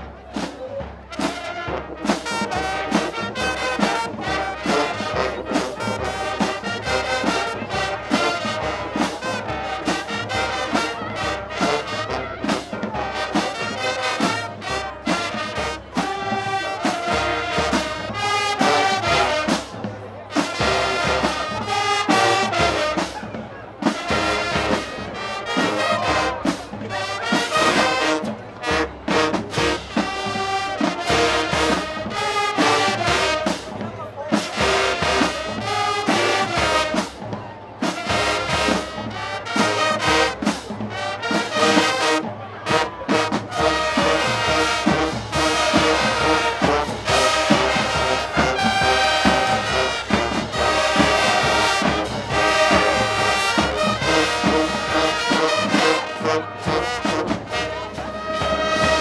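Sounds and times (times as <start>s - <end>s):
brass marching band: 0.0s - 59.0s
steady drum beat: 0.0s - 59.0s.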